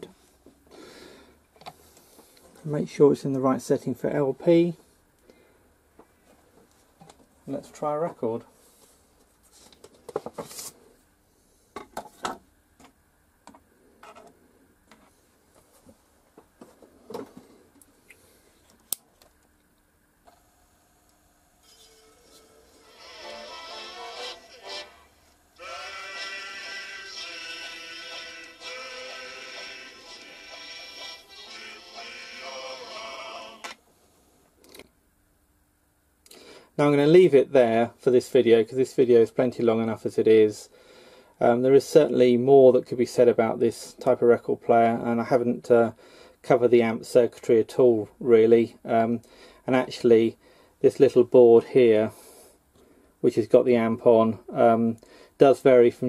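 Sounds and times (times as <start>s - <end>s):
music from record player speaker: 21.7s - 33.8s.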